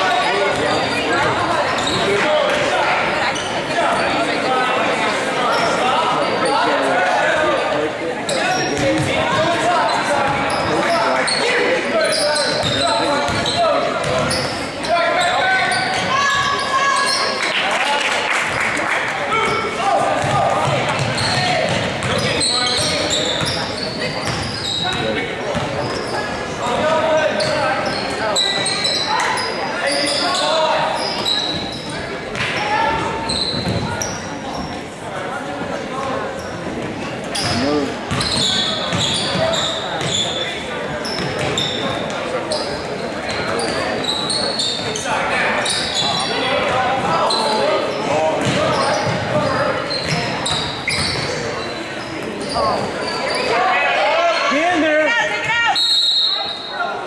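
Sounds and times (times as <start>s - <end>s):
sneaker squeaks: 0.0s - 4.3s, 5.4s - 6.9s, 8.3s - 17.5s, 19.4s - 34.9s, 36.0s - 54.6s, 55.7s - 57.0s.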